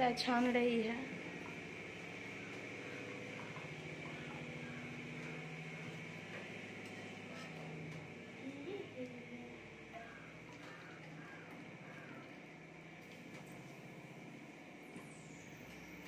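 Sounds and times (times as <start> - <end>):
low motor hum: 0.0 - 16.0.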